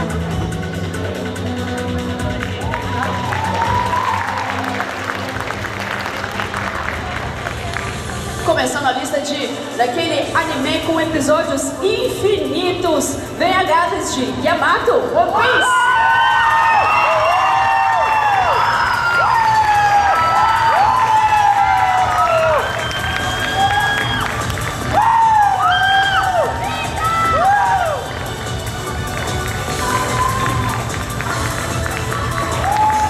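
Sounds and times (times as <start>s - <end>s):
audience cheering: 2.6s - 6.7s, 15.6s - 28.2s, 29.7s - 33.0s
high-pitched shouts and whoops: 2.7s - 4.6s, 15.4s - 28.1s, 29.7s - 30.9s, 32.2s - 33.0s.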